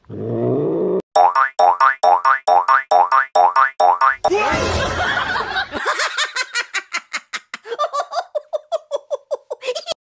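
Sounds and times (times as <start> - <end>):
springy boing sounds: 1.2 - 4.3.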